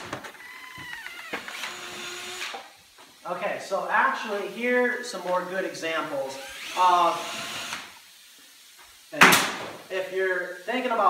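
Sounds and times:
door hinges squeaking: 0.0 - 2.0.

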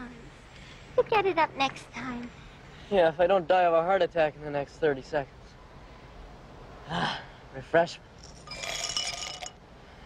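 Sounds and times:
pills rattling into a glass: 8.2 - 9.5.

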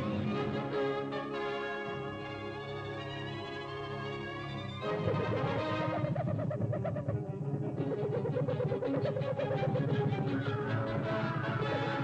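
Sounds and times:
rapid warbling pulse: 4.9 - 10.8.

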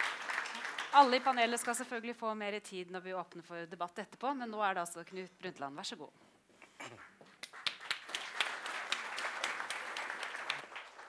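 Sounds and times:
audience applauding: 0.0 - 1.7, 7.4 - 11.0.

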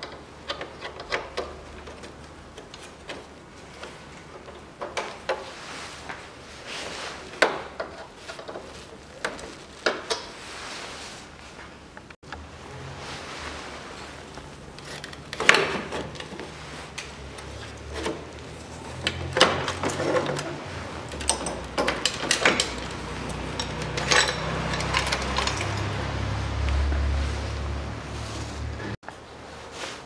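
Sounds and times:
clicks and rattles of wiring: 0.0 - 5.4, 7.4 - 10.4, 14.3 - 27.0.

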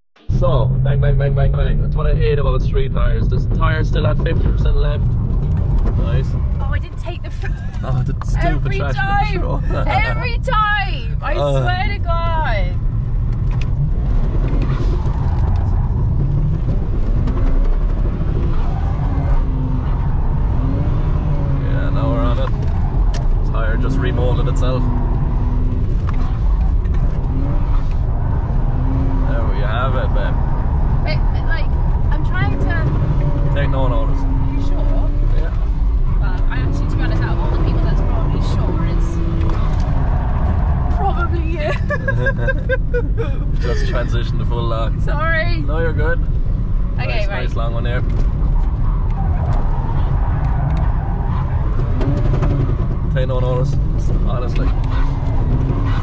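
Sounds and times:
car engine revving: 0.2 - 56.0.

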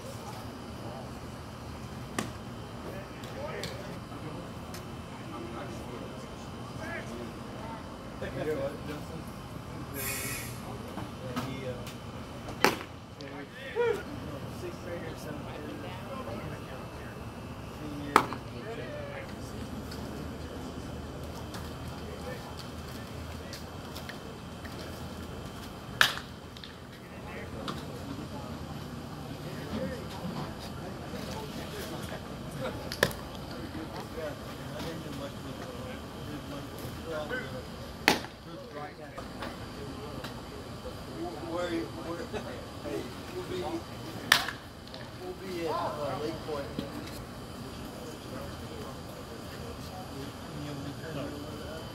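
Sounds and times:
murmur of spectator chatter: 0.0 - 51.9
baseball hitting glove crack: 12.6 - 12.9, 26.0 - 26.7, 38.0 - 38.4, 44.3 - 44.6
baseball smacking into mitt: 38.0 - 38.4.

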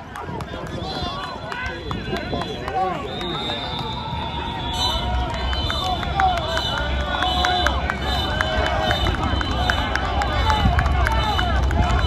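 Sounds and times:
people shouting and chattering: 0.0 - 12.0.

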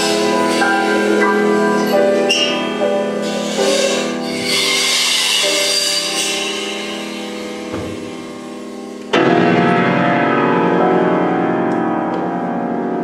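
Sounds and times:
cymbals shimmering: 0.0 - 9.3
grand piano chords: 0.0 - 13.0.

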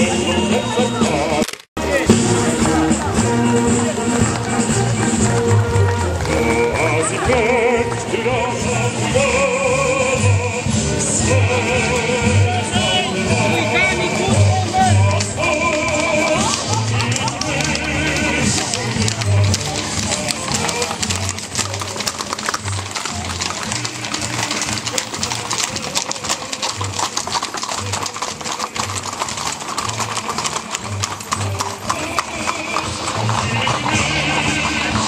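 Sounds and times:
horse hooves clip-clopping on asphalt: 0.0 - 35.0.

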